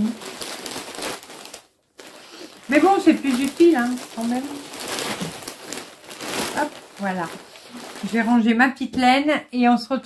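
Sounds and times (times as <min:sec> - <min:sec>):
packaging crinkling and rustling: 0:00.0 - 0:08.6.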